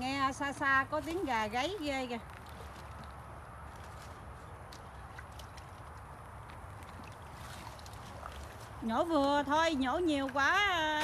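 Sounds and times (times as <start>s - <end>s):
water sloshing and dripping: 0.0s - 11.0s.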